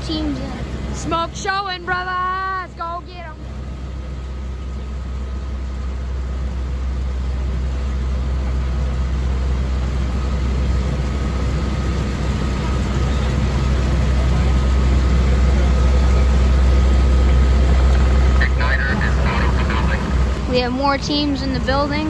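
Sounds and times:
diesel engine running: 0:00.0 - 0:22.0
faint steady whine: 0:00.0 - 0:22.0.

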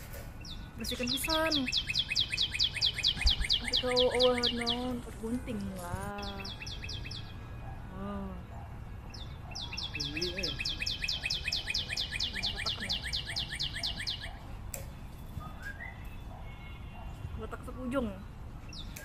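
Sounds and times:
bird singing high falling notes: 0:00.4 - 0:05.1, 0:06.1 - 0:07.5, 0:09.1 - 0:14.4.

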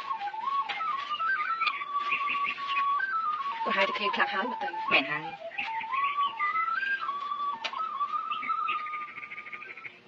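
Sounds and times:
high whistle-like melody: 0:00.0 - 0:10.0.

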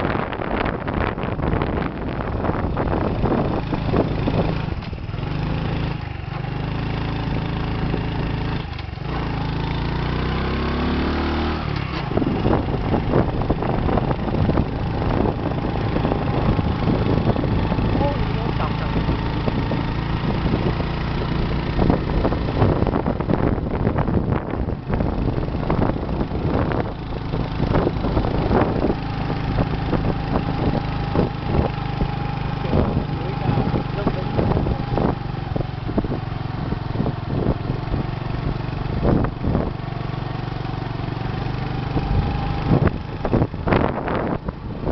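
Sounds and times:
wind buffeting: 0:00.0 - 0:06.0, 0:12.0 - 0:40.2, 0:41.1 - 0:44.9
motorcycle engine running: 0:00.0 - 0:44.9.

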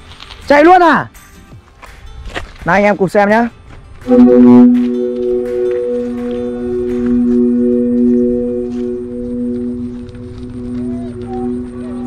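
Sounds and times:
kite flutes sounding in wind: 0:04.0 - 0:12.0.

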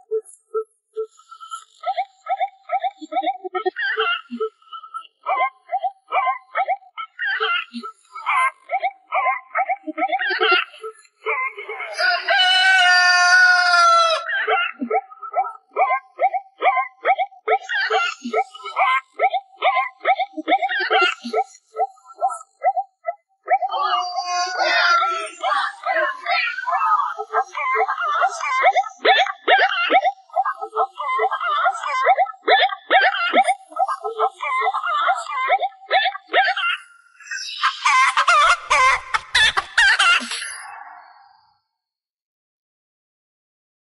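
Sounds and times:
rooster crowing: 0:12.0 - 0:14.3.

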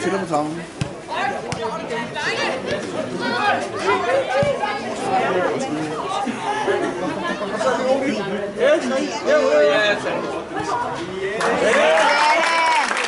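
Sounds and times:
babble of voices: 0:01.1 - 0:12.3.

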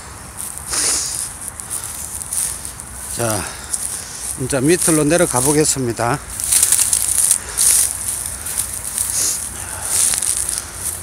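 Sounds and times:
footsteps through dry reeds: 0:00.0 - 0:11.0.

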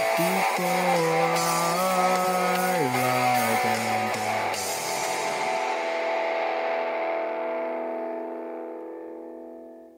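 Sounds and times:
electric guitar chord ringing: 0:00.0 - 0:09.9.

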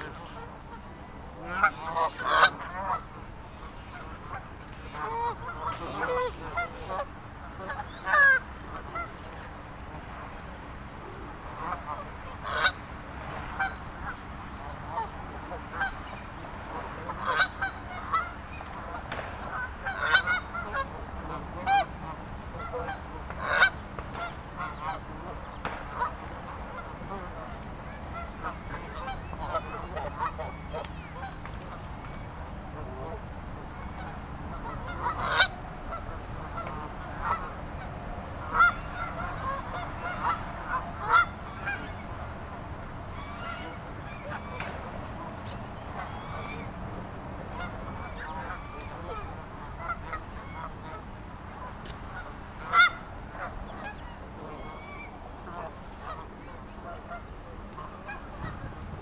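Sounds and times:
geese honking: 0:00.0 - 0:59.0.

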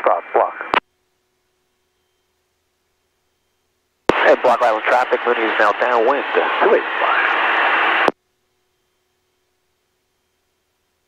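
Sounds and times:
radio static hiss: 0:00.0 - 0:00.8, 0:04.1 - 0:08.2.

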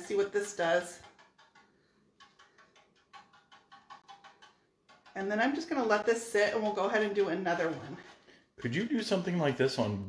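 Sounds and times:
paintbrush dabbing on metal: 0:00.0 - 0:09.7.

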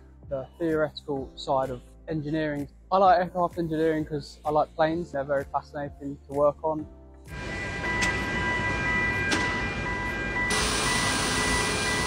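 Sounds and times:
high whining tones: 0:07.3 - 0:12.0
machinery hum and hiss: 0:07.4 - 0:12.0.

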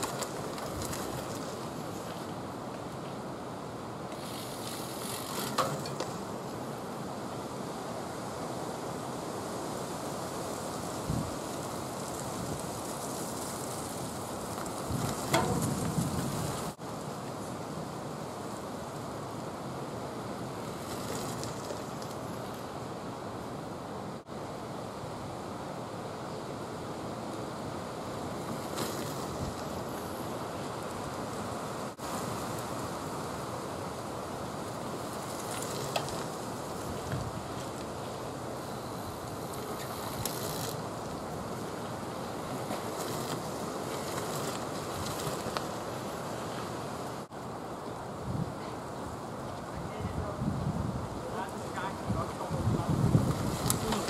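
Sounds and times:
wind gusts or rustles: 0:00.0 - 0:54.0
wind noise on microphone: 0:09.8 - 0:16.8, 0:34.8 - 0:47.3, 0:48.1 - 0:54.0.

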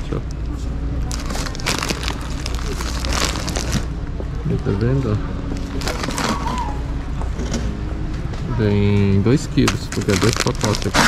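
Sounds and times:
plastic bags crinkling: 0:01.1 - 0:03.9, 0:05.6 - 0:06.8, 0:09.6 - 0:11.0.

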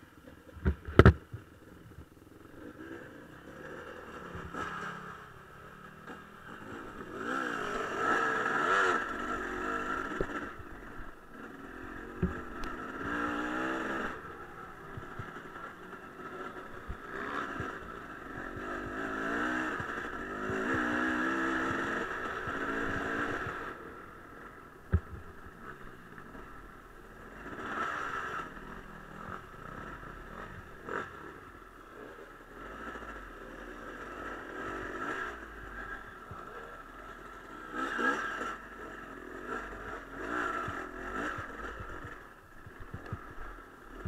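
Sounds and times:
dirt bike engine revving: 0:02.4 - 0:44.0.

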